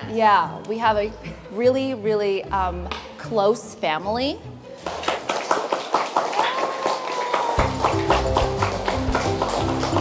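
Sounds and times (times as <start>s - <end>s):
children clapping: 4.8s - 10.0s.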